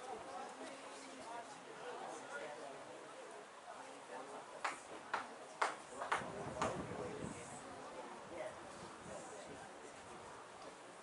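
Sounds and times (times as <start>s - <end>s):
sharp hand claps: 4.6s - 6.8s.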